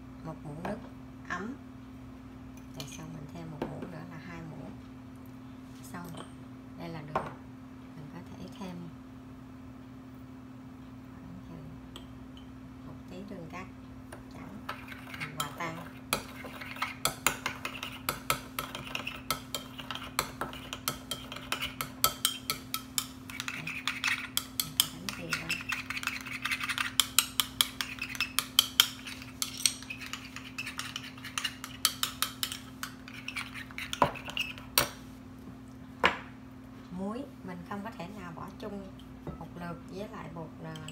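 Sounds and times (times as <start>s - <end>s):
steady low hum: 0.0s - 40.9s.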